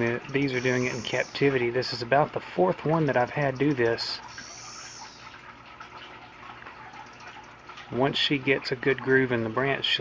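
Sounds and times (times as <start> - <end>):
cicada buzz: 0.3 - 1.6, 4.3 - 5.3.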